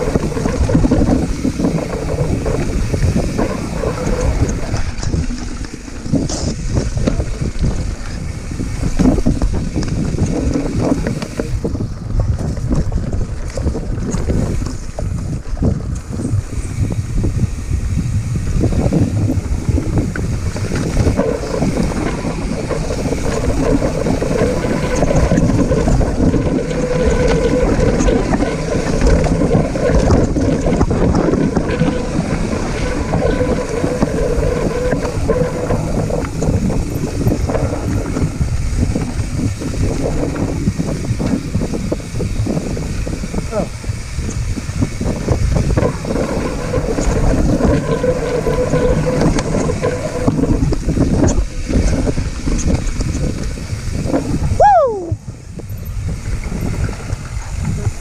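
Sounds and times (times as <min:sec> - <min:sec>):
mountain bike rumbling and rattling: 0:00.0 - 0:58.0
wind buffeting microphone: 0:00.0 - 0:58.0.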